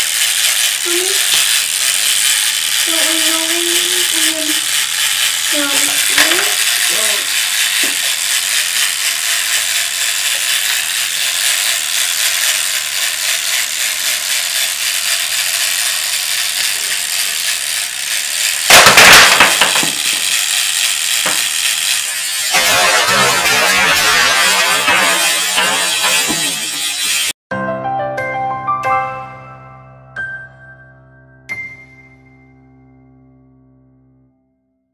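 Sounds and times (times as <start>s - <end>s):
loud toy clatter: 0.0s - 27.4s
toy timer ticking: 0.0s - 27.4s
music: 27.5s - 34.9s.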